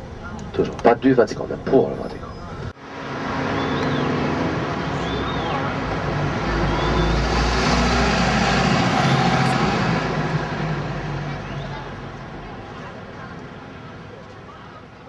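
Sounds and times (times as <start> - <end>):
passing vehicles: 0.0 - 15.0
heavy engine rumbling past: 2.2 - 14.1.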